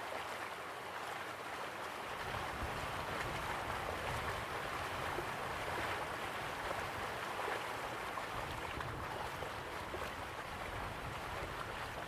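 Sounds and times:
rush of falling water: 0.0 - 12.0.

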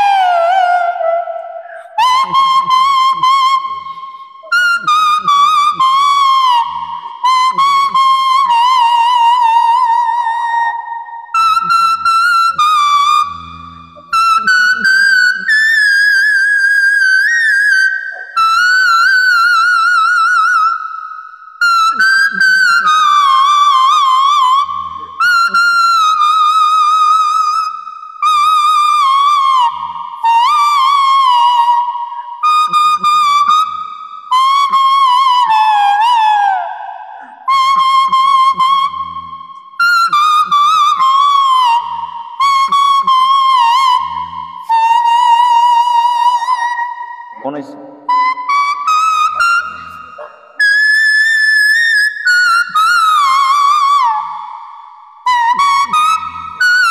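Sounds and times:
plastic toy flute playing tune: 0.0 - 20.7, 21.6 - 56.9.

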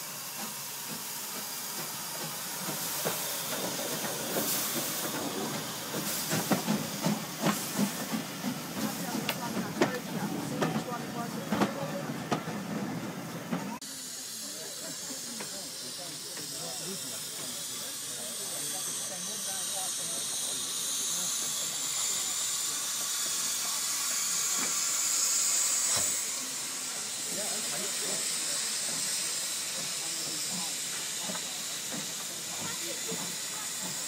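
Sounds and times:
steam locomotive hissing: 0.0 - 34.0
voices on a platform: 2.8 - 25.0.

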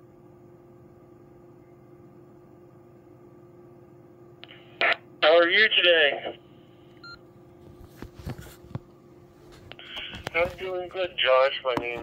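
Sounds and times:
faint steady hum: 0.0 - 12.0
radio receiver hiss: 4.4 - 5.0, 9.7 - 12.0.

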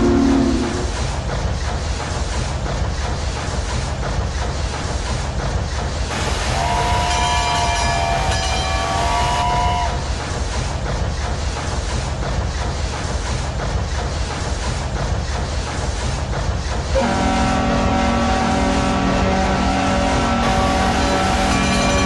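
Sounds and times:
steam train chugging: 0.0 - 22.0
train whistle chord: 6.5 - 10.0, 17.0 - 22.0.

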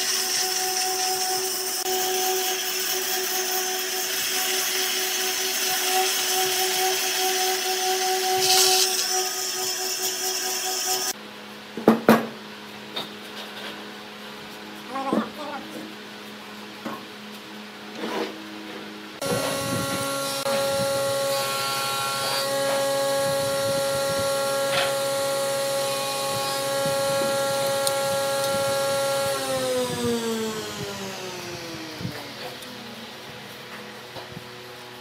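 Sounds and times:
power tool motor whining: 0.0 - 11.2, 19.2 - 33.4
motor winding down: 19.2 - 33.1.

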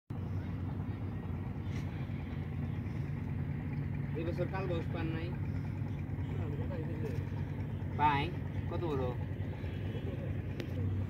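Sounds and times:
low engine drone: 0.1 - 11.0.

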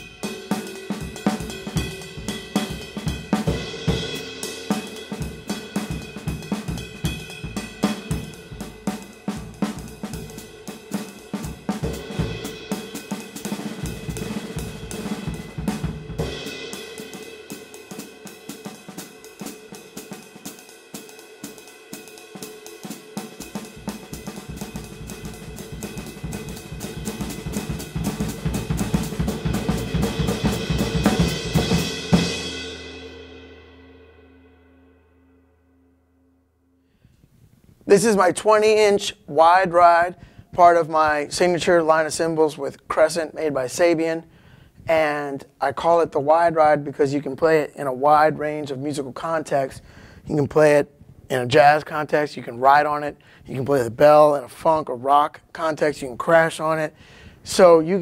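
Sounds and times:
bass drum: 0.0 - 19.0, 23.4 - 32.8
snare drum: 0.0 - 32.8
ride cymbal played with drumstick: 0.0 - 34.8.

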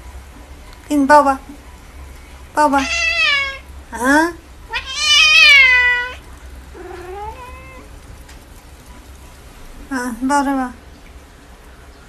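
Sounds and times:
cat meowing: 2.8 - 3.7, 4.7 - 7.9.

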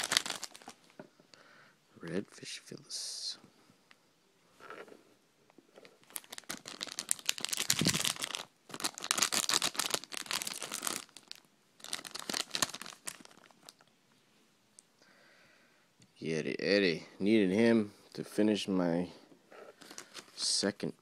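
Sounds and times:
plastic foil pack crinkling: 0.0 - 0.8, 5.9 - 13.9, 19.7 - 20.5.

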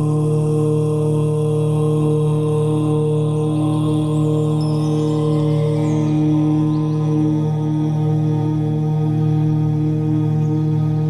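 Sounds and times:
chanted om drone: 0.0 - 11.0
devotional background music: 0.0 - 11.0.

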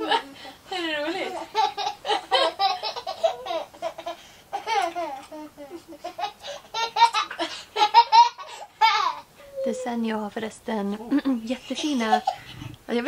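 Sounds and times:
toddler laughing: 1.3 - 9.8.

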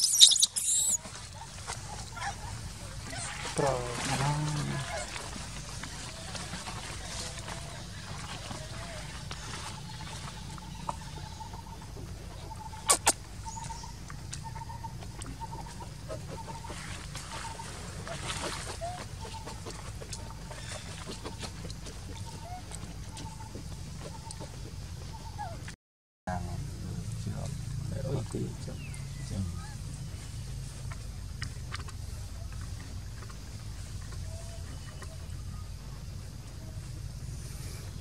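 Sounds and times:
bird calling: 0.0 - 5.4, 7.0 - 25.7.

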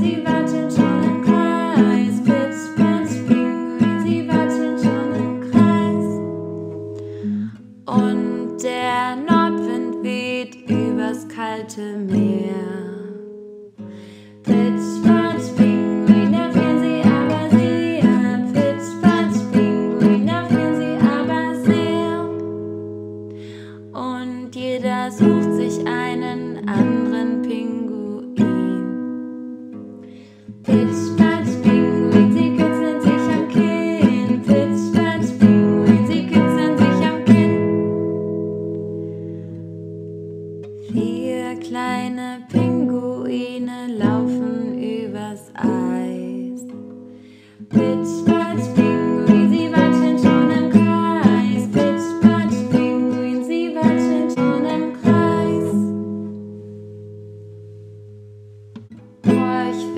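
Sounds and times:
nylon-string guitar strumming: 0.0 - 59.9.

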